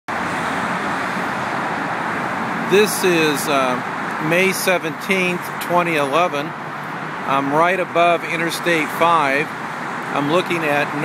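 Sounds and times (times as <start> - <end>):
freeway traffic hiss: 0.1 - 11.0.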